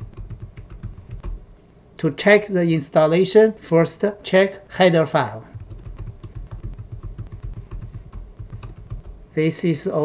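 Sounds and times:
typing on computer keyboard: 0.0 - 1.4, 5.6 - 9.2.

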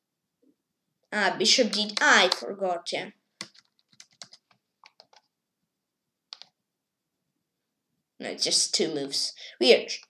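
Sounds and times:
computer mouse clicks: 3.4 - 5.3, 6.3 - 6.6.

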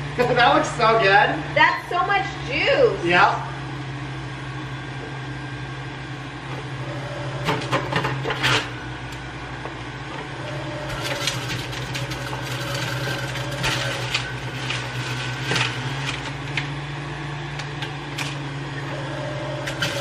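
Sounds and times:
juicer motor grinding fruit: 3.7 - 20.0.

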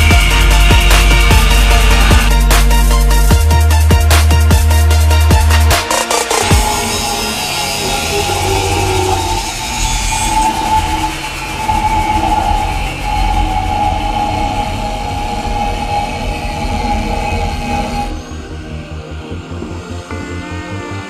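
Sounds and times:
angle grinder cutting steel: 0.0 - 3.3, 4.9 - 18.7.

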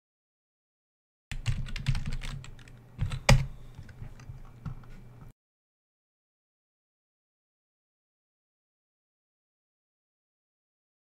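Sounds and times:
typing on computer keyboard: 1.3 - 4.3.

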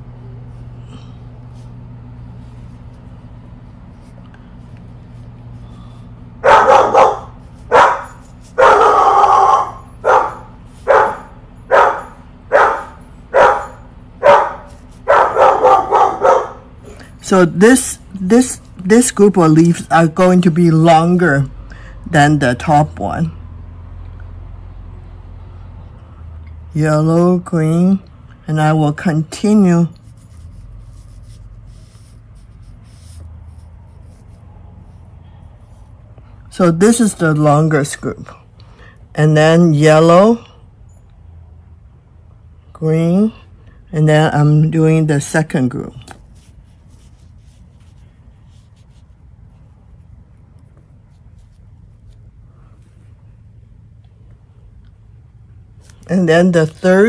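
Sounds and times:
low hum: 0.0 - 57.0
brush stroking on paper: 1.5 - 6.2, 6.8 - 9.0, 29.0 - 36.3, 45.8 - 53.2
dog barking: 6.4 - 16.7.

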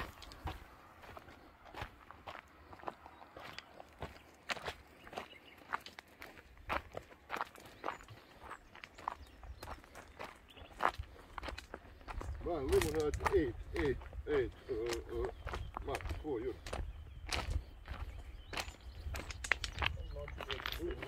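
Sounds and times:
footsteps on gravel: 0.0 - 21.0.

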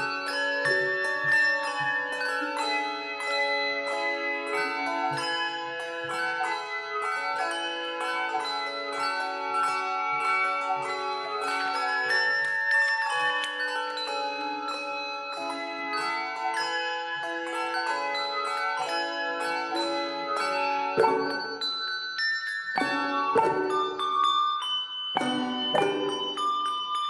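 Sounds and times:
handbell choir playing: 0.0 - 27.0.

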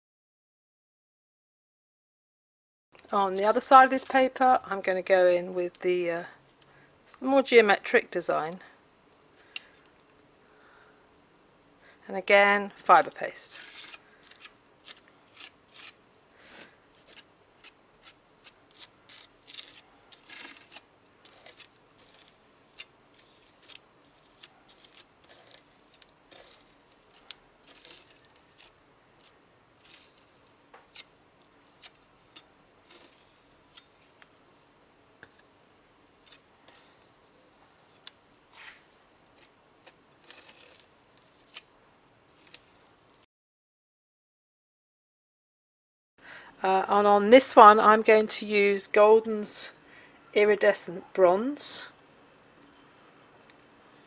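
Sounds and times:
palette knife scraping paste: 13.0 - 34.7, 39.4 - 41.6.

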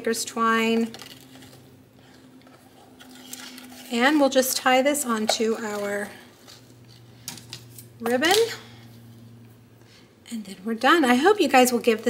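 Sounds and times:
low steady hum: 0.0 - 12.0
twine and ribbon handling: 0.6 - 9.2.

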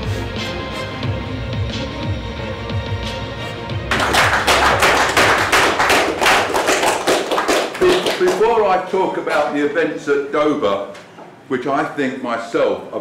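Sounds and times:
audience applauding: 3.8 - 8.7
man speaking: 7.8 - 13.0.

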